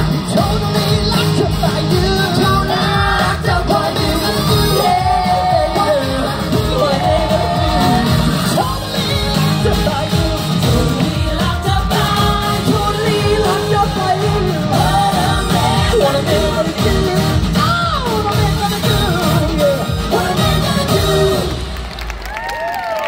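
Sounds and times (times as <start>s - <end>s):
dance beat: 0.0s - 21.7s
people singing into microphones: 0.0s - 21.8s.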